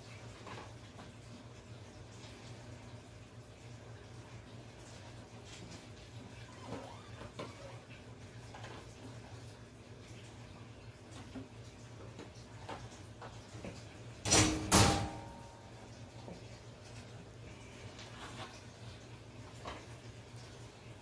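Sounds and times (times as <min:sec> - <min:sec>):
handling noise in aquarium: 0:03.8 - 0:21.0.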